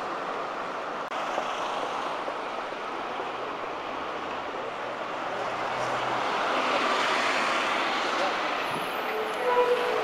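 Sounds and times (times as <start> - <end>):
bus passing by: 0.0 - 10.0
street traffic: 0.0 - 10.0.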